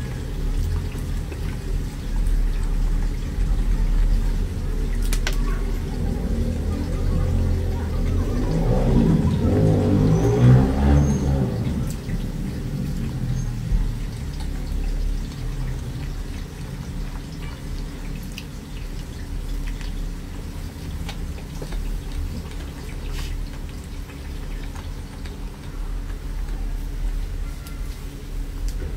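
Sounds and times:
chewing crepe roll: 0.0 - 28.9
steady low rumble: 0.0 - 28.9.

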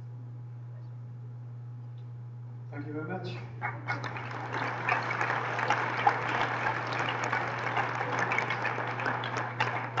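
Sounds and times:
low electrical hum: 0.0 - 10.0
audience applauding: 3.6 - 10.0.

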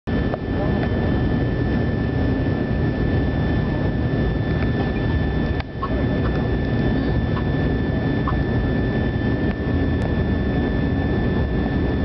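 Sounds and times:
airflow and jet engine noise: 0.1 - 12.0
high engine whine: 0.1 - 12.0.

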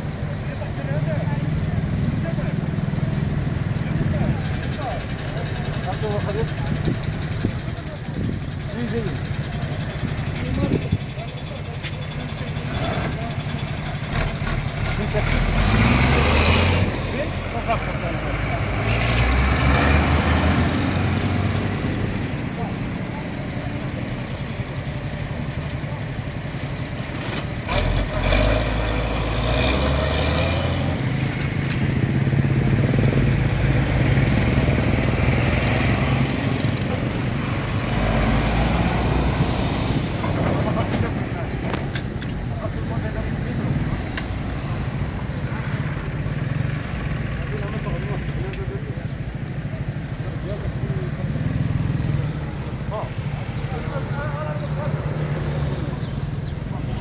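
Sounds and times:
small motorcycle engines idling: 0.0 - 15.4, 20.7 - 27.7, 40.0 - 57.0
people talking: 0.2 - 14.2, 14.8 - 18.9, 21.9 - 26.4, 40.2 - 46.1, 47.1 - 57.0.

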